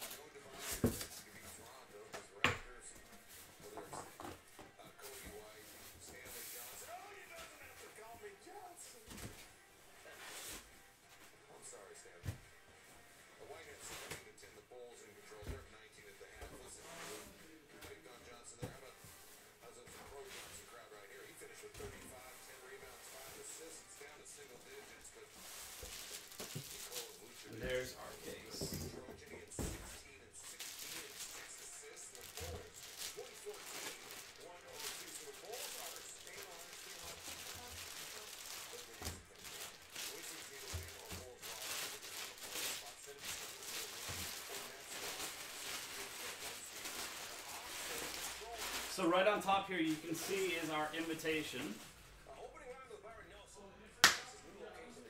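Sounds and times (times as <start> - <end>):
plastic wrap crinkling: 22.1 - 28.7, 29.6 - 51.9.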